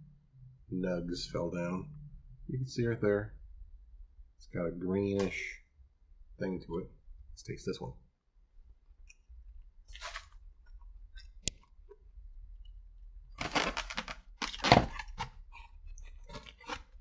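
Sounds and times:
rustling and handling noise: 0:08.9 - 0:12.1, 0:13.3 - 0:17.0
chewing: 0:14.5 - 0:17.0.

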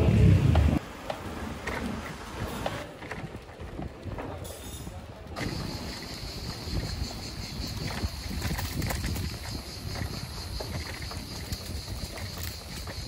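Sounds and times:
wind buffeting microphone: 0:00.0 - 0:00.9, 0:05.2 - 0:13.0
tyres rolling over paving stones: 0:05.3 - 0:13.0.

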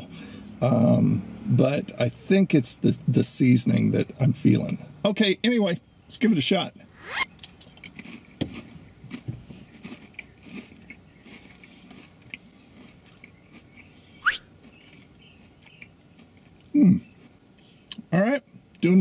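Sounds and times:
rising squeak: 0:07.0 - 0:07.3
crisp crunching while chewed: 0:07.4 - 0:18.0.

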